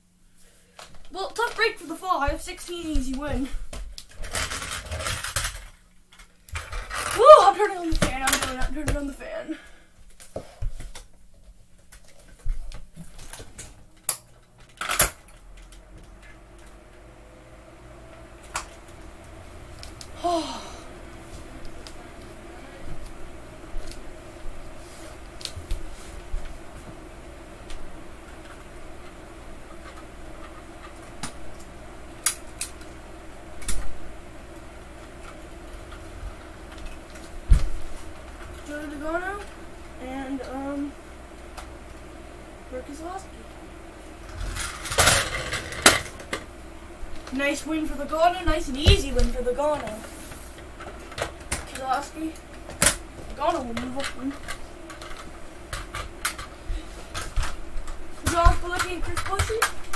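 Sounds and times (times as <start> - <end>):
electric fan hum: 0.0 - 59.9.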